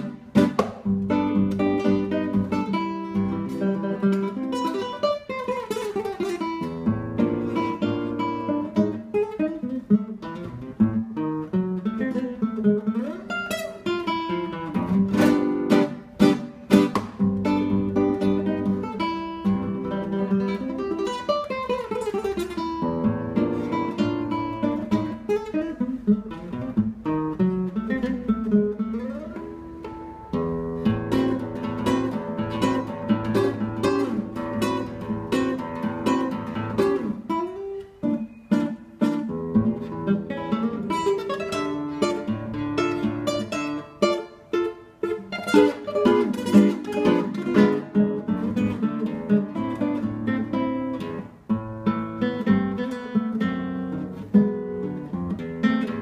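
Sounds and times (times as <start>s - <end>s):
classical guitar playing tango: 0.0s - 56.0s.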